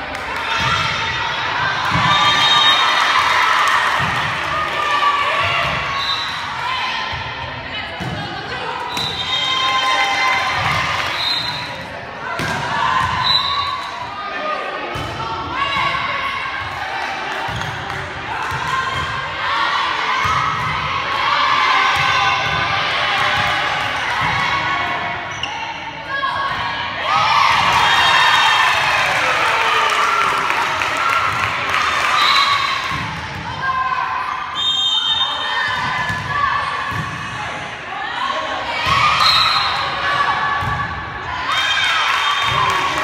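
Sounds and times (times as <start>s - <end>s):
people shouting and cheering: 0.0s - 43.0s.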